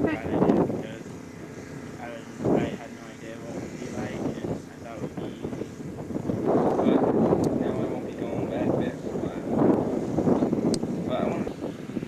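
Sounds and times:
person talking: 0:00.0 - 0:00.4.

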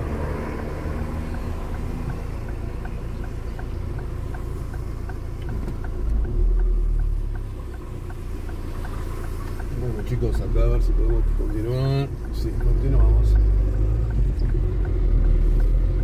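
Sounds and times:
car engine and road rumble: 0:00.0 - 0:16.0
turn signal ticking: 0:00.0 - 0:16.0.

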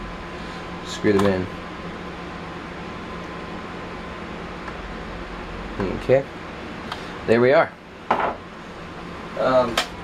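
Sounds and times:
electric fan whooshing: 0:00.0 - 0:10.0.

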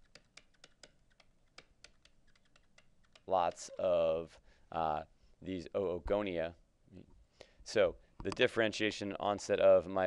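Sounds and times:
stylus tapping on tablet screen: 0:00.0 - 0:03.8.

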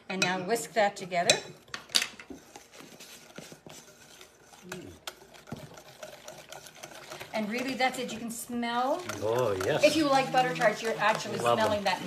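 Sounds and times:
wire whisk ticking against glass bowl: 0:04.0 - 0:12.0.

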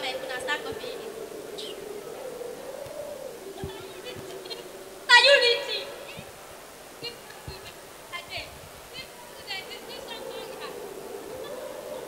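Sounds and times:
droning hum: 0:00.0 - 0:07.6
person talking: 0:03.6 - 0:06.3.

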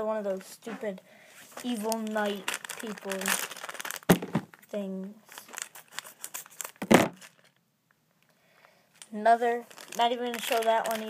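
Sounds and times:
loud plastic rustle: 0:01.5 - 0:04.5, 0:05.3 - 0:07.6, 0:09.6 - 0:11.0
plastic bag crinkling and tearing: 0:01.5 - 0:04.6, 0:05.2 - 0:07.6, 0:09.5 - 0:11.0.

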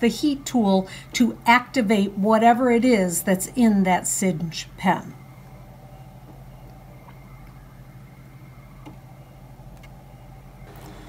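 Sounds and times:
cutting machine motor hum: 0:10.6 - 0:11.0.

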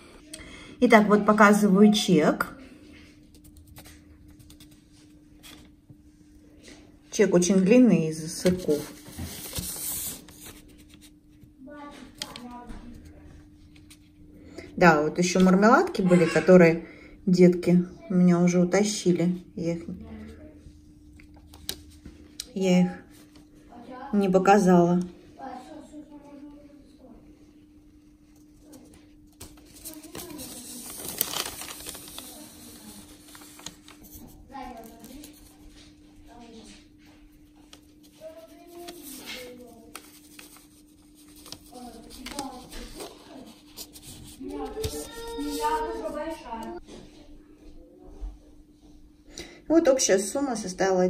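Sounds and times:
paper receipt rustling: 0:07.4 - 0:13.1, 0:28.0 - 0:46.8.

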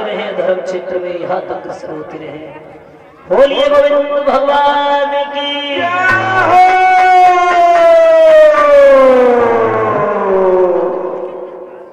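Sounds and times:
man singing a long note: 0:04.8 - 0:11.9
sharp percussion strokes: 0:05.8 - 0:08.1.

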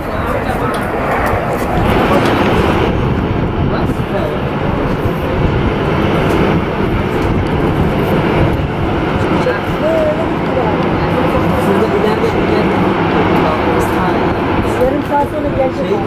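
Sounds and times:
jet engines at taxi power: 0:00.0 - 0:16.0.

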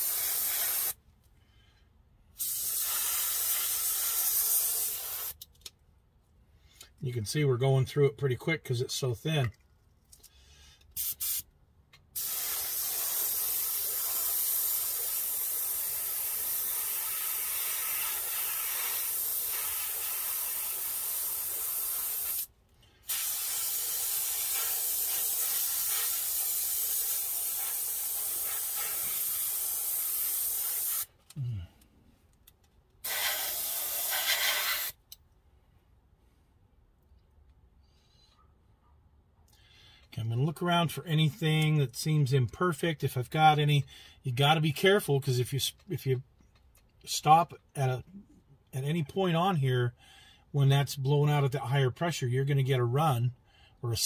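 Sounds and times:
airbrush spraying hiss: 0:00.0 - 0:01.0, 0:02.4 - 0:05.4, 0:11.0 - 0:11.4, 0:12.2 - 0:31.1, 0:33.0 - 0:35.0.

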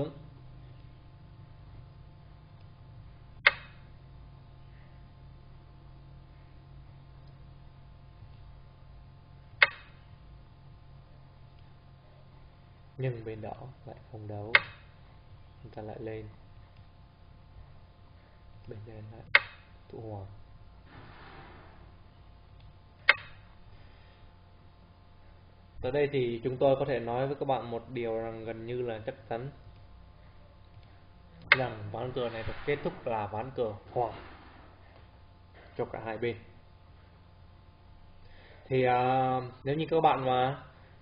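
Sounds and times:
faint steady low hum: 0:00.0 - 0:41.0
sharp click: 0:03.4 - 0:03.8, 0:09.6 - 0:10.0, 0:14.5 - 0:14.9, 0:18.6 - 0:19.7, 0:22.6 - 0:23.4.

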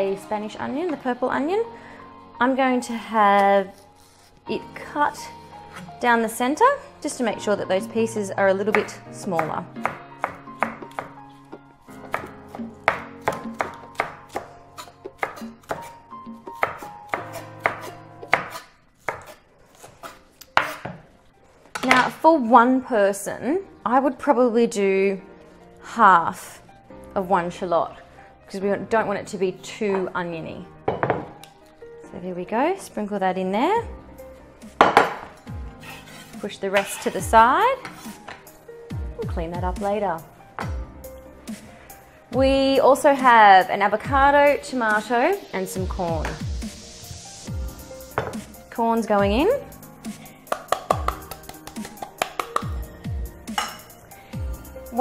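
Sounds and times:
knife chopping on wooden board: 0:08.7 - 0:11.1, 0:12.0 - 0:21.0, 0:48.1 - 0:48.4
bowl knocking on stone: 0:30.9 - 0:31.3, 0:48.2 - 0:48.4.

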